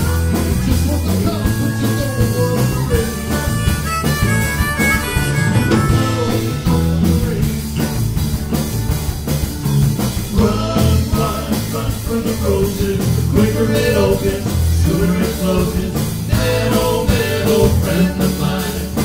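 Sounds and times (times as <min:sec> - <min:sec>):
harmonica bending notes: 0:00.0 - 0:07.3
blues rock band playing: 0:00.0 - 0:19.0.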